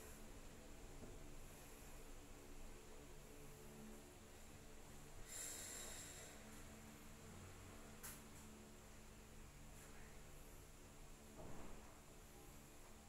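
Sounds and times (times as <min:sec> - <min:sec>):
soft hiss: 0:00.0 - 0:13.0.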